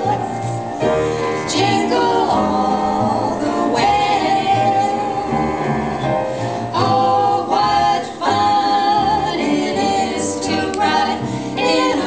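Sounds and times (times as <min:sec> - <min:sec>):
instrumental accompaniment with bass: 0:00.0 - 0:12.0
women singing close harmony: 0:00.0 - 0:12.0.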